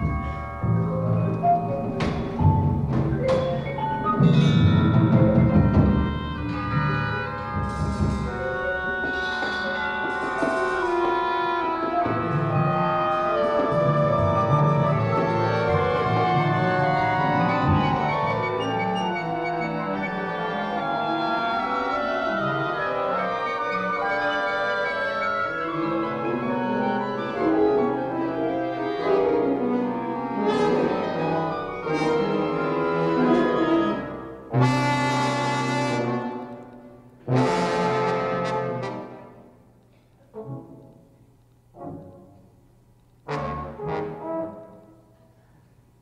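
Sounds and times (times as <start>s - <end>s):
orchestra improvising: 0.0s - 45.2s.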